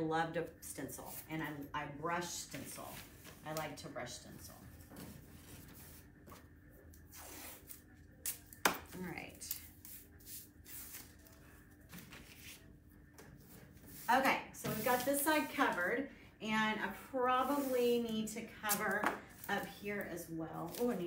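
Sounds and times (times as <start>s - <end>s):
paper rustling: 2.5s - 3.8s, 10.6s - 12.7s.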